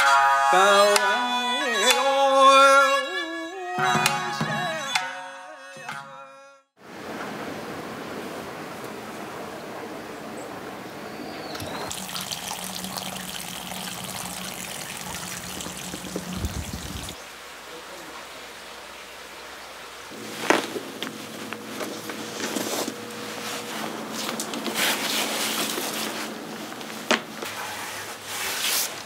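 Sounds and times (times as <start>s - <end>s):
water trickling into stone basin: 11.8s - 17.2s.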